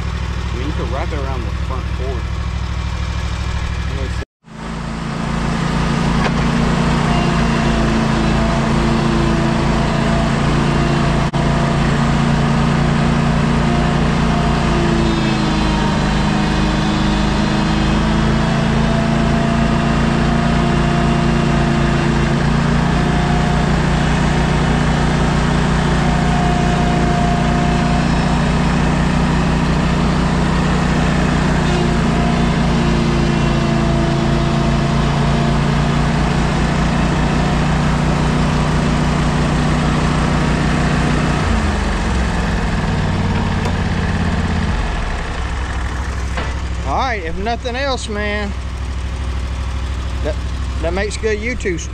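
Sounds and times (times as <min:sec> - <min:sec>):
engine running at held revs: 0:00.0 - 0:51.9.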